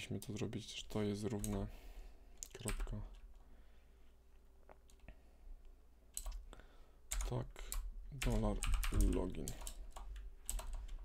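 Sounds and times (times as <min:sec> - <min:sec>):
keyboard keys clicking: 0:07.1 - 0:11.0.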